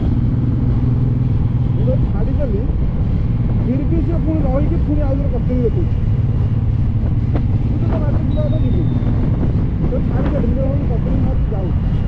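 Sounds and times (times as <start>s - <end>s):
motorcycle engine rumble: 0.0s - 12.0s
wind noise: 0.0s - 12.0s.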